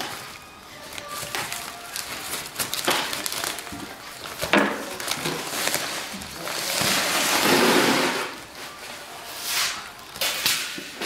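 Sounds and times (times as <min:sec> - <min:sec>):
plastic sack rustling: 0:00.0 - 0:11.0.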